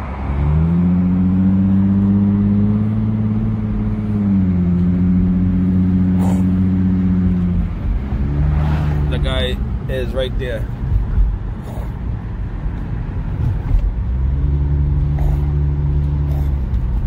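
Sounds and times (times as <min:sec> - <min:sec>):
car engine from inside cabin: 0:00.0 - 0:17.0.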